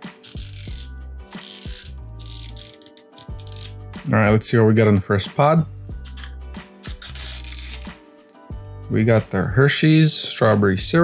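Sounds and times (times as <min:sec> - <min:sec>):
plastic tear-strip rasping: 0:00.0 - 0:03.8, 0:06.1 - 0:08.0
background music: 0:00.0 - 0:11.0.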